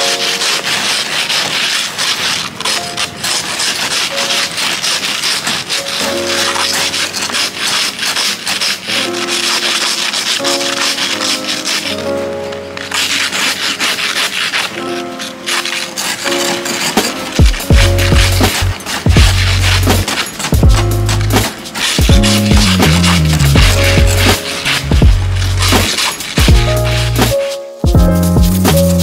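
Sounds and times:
ice scrapers scraping windshield: 0.0s - 29.0s
background music with held notes: 8.9s - 29.0s.

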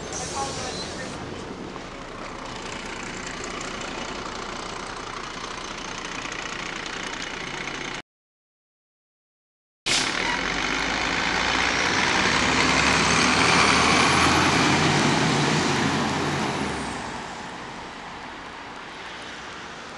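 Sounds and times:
diesel bus engine and road noise: 0.0s - 8.0s, 9.9s - 19.9s.

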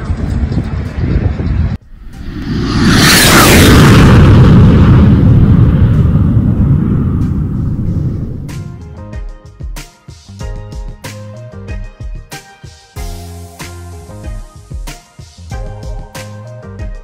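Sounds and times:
deep rumbling boom: 1.8s - 8.9s
rising whoosh: 1.8s - 9.0s.

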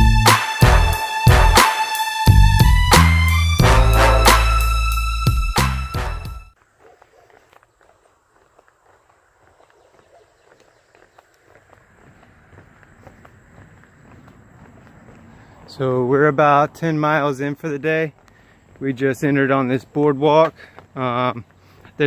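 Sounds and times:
background music with string tones: 0.0s - 6.5s
footsteps on wooden boardwalk: 6.6s - 16.4s, 17.4s - 22.0s.

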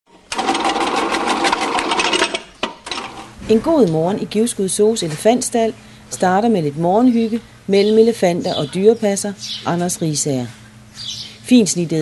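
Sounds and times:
motor hum: 0.1s - 12.0s
fruit-slicing machine clatter: 0.3s - 3.3s.

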